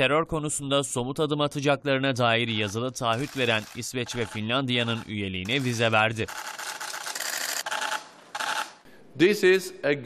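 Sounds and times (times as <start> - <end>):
camera shutters clicking rapidly: 3.1 - 8.8.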